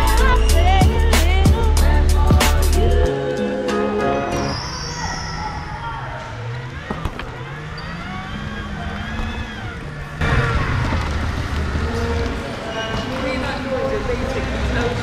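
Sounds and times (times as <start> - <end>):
wheelchair motors whining: 4.5 - 13.4.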